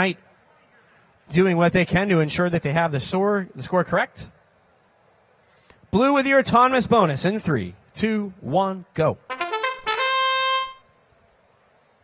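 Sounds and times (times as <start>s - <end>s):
buzzing horn tone: 9.3s - 10.9s.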